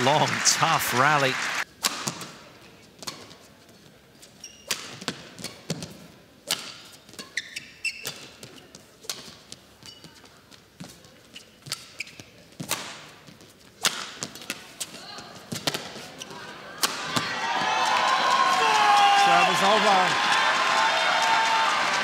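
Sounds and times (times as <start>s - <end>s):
shoe squeaks on court: 4.2s - 5.7s, 6.8s - 8.8s, 9.8s - 10.3s, 11.2s - 12.8s
racket hitting shuttlecock: 4.6s - 7.4s, 13.8s - 16.1s.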